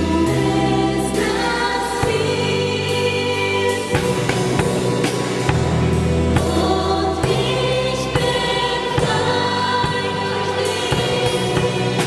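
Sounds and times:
women singing: 0.0 - 5.5, 6.3 - 12.0
church band playing worship song: 0.0 - 12.0.

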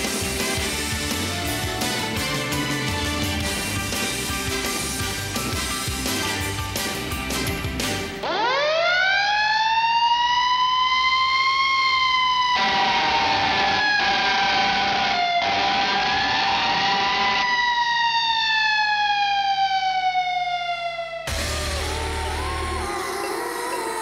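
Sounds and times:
wind-up siren wailing: 8.2 - 24.0.

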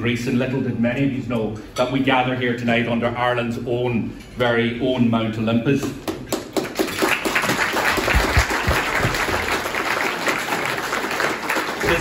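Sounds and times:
audience applauding: 6.5 - 12.0.

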